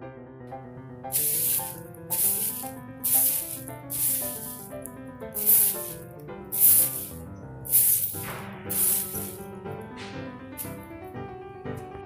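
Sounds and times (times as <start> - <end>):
background music: 0.4 - 12.0
broom sweeping: 1.1 - 9.5, 10.6 - 10.9.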